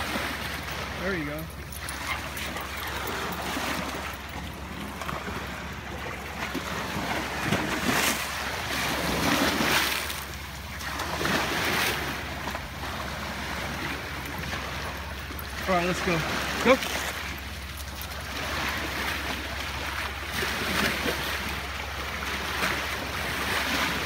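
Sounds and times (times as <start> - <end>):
small waves breaking on pebbly shore: 6.5 - 14.9, 15.6 - 24.0.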